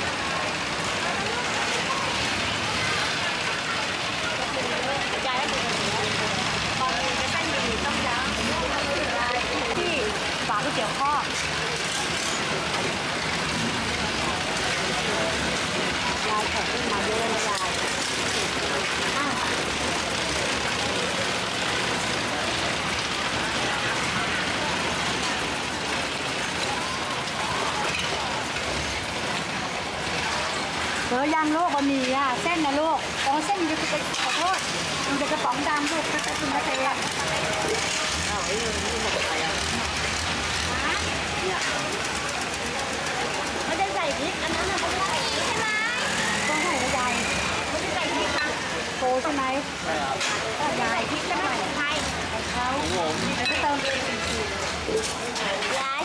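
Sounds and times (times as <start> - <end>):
people talking: 0.0 - 56.0.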